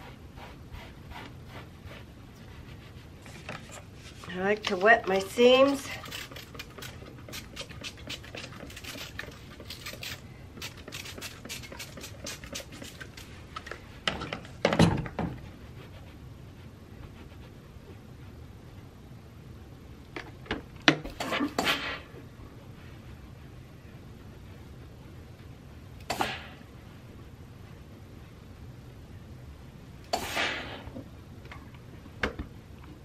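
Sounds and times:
spray bottle squirting water: 0:06.0 - 0:13.3
short hiss: 0:30.1 - 0:30.8.

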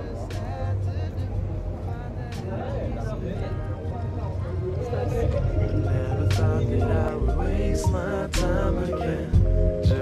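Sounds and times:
background music: 0:00.0 - 0:10.0
indistinct voices: 0:00.0 - 0:10.0
low rumble of traffic: 0:00.0 - 0:10.0.

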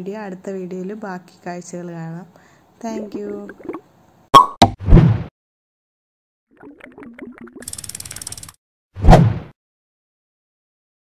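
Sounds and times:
ratchet-like clicks: 0:07.6 - 0:08.6.

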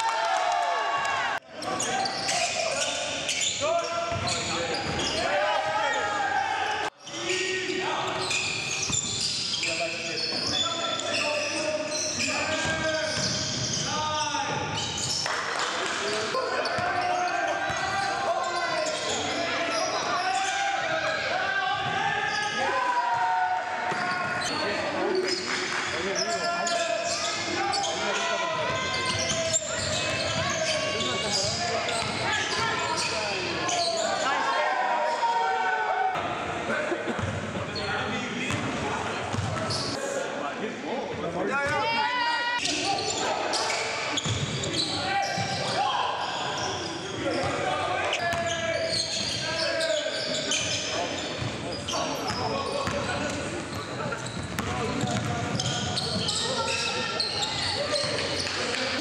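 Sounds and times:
players calling out: 0:00.0 - 0:40.1, 0:41.5 - 0:59.0.

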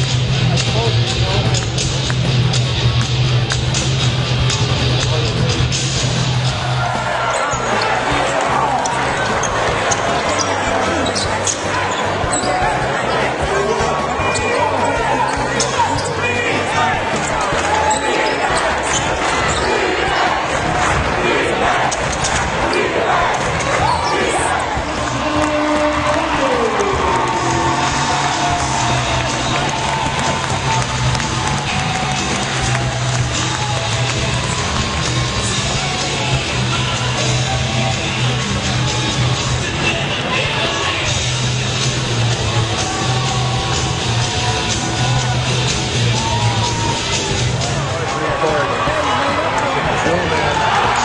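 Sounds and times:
arena crowd noise: 0:00.0 - 0:51.0
music: 0:00.0 - 0:51.0.

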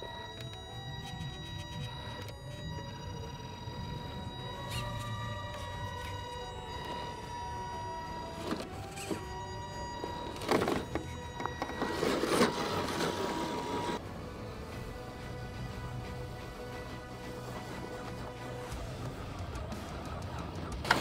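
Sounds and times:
background music: 0:00.0 - 0:21.0
electric motor whining: 0:00.0 - 0:21.0.

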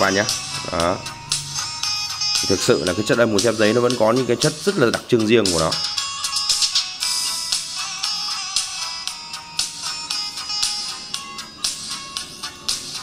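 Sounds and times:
bright thin music through tweeters: 0:00.0 - 0:13.0.

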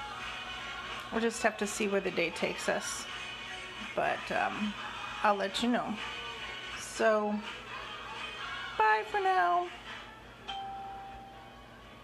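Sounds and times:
bell-like chime: 0:10.5 - 0:11.5.

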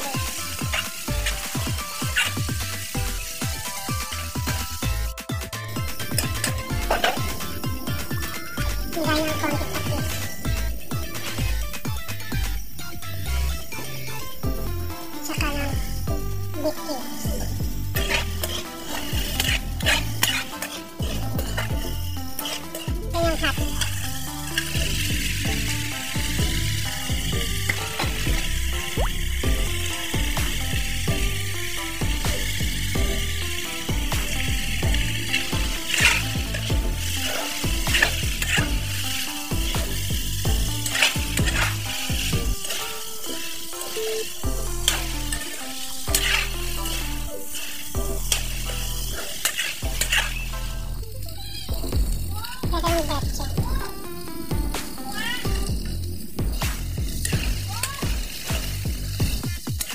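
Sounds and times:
spatula scraping a pan: 0:00.0 - 0:05.0, 0:15.4 - 0:51.0, 0:51.7 - 0:59.9
meat sizzling in a wok: 0:00.0 - 0:59.9.

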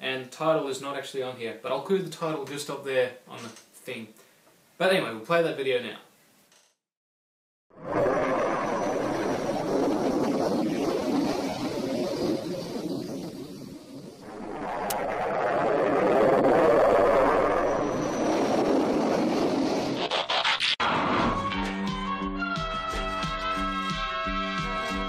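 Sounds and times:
jet aircraft fly-by: 0:07.8 - 0:20.1.

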